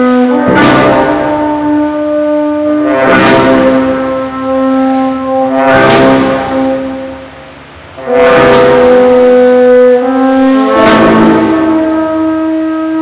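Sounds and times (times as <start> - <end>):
brass band playing march: 0.0 - 13.0
cymbal crashes: 0.3 - 13.0.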